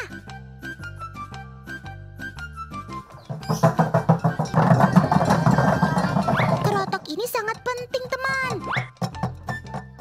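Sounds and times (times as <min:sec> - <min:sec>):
wooden cattle bells clattering: 0:03.0 - 0:10.0.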